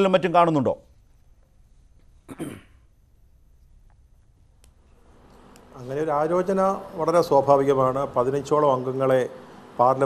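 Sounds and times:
person coughing: 0:02.2 - 0:02.9.

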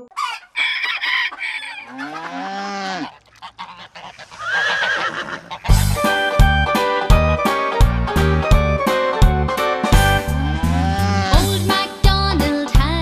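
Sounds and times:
fowl honking: 0:00.0 - 0:06.3, 0:10.0 - 0:11.5
long low animal call: 0:01.6 - 0:05.7, 0:10.3 - 0:11.5
music: 0:05.7 - 0:13.0
short higher animal call: 0:10.3 - 0:11.5.

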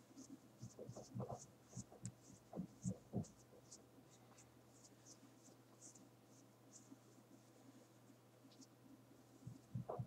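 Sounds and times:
low steady hum: 0:00.0 - 0:10.0
soft scratching strokes: 0:00.0 - 0:10.0.

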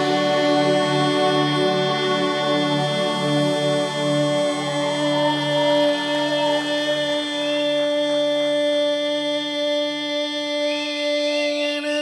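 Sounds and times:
faint wavering high melody: 0:00.0 - 0:07.6
man singing a long note: 0:00.0 - 0:12.0.

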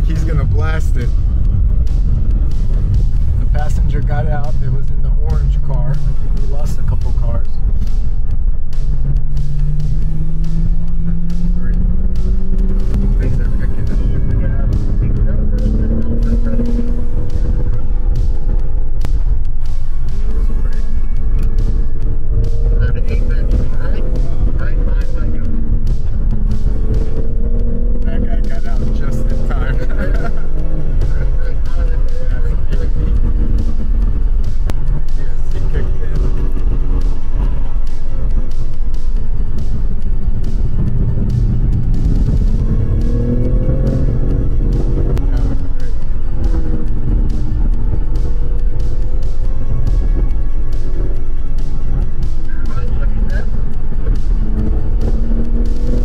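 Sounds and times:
background music: 0:00.0 - 0:56.0
car engine rumbling from cabin: 0:00.0 - 0:56.0.

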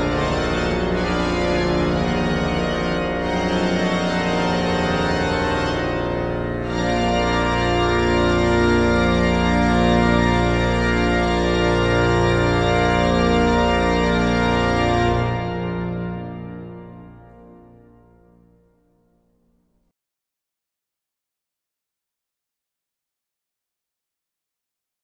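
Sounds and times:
pipe organ playing: 0:00.0 - 0:18.6
deep organ pedal bass: 0:00.0 - 0:18.8.

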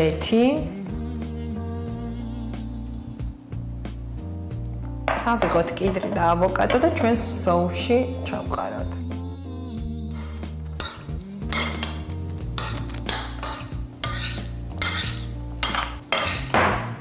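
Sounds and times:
spoon clinking and scraping bowl: 0:10.1 - 0:16.8.

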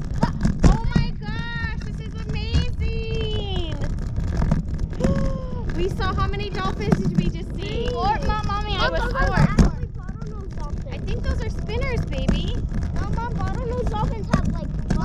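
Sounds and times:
wind on microphone: 0:00.0 - 0:15.0.

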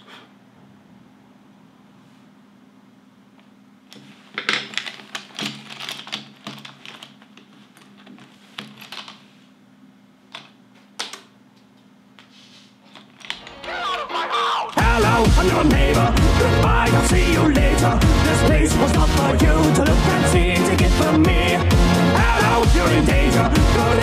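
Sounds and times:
music: 0:13.4 - 0:24.0.

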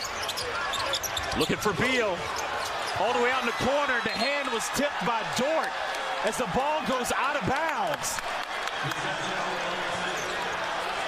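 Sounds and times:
crowd noise in arena: 0:00.0 - 0:11.0.

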